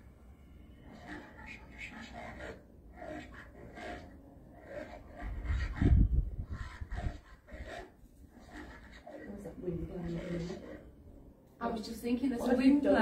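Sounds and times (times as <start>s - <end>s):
wind buffeting microphone: 5.2s - 7.8s.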